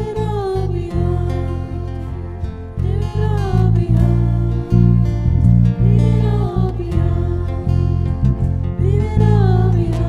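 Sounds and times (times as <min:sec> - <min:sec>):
deep sustained bass notes: 0:00.0 - 0:10.0
strummed guitars: 0:00.0 - 0:10.0
worship band slow song: 0:00.0 - 0:10.0.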